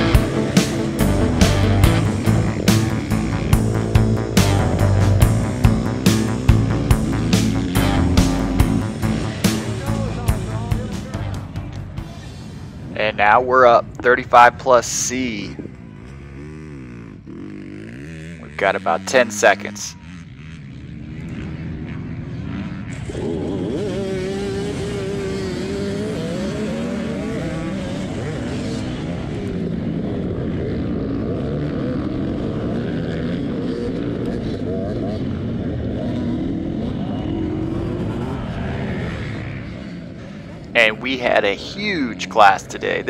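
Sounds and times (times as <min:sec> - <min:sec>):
dirt bikes revving: 0:00.0 - 0:43.0
nearby dirt bike accelerating: 0:00.0 - 0:43.0.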